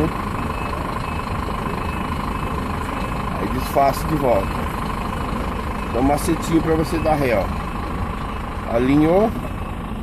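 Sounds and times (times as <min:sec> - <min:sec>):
diesel truck engine running: 0:00.0 - 0:10.0.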